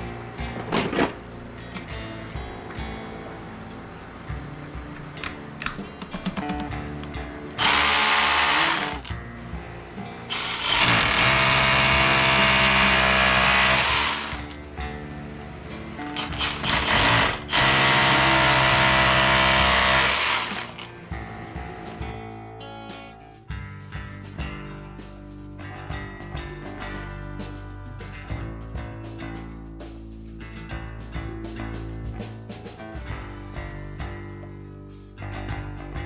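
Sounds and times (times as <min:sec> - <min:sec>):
background music: 0:00.0 - 0:36.0
drill boring into concrete: 0:07.6 - 0:09.1, 0:10.3 - 0:14.5, 0:16.2 - 0:20.9.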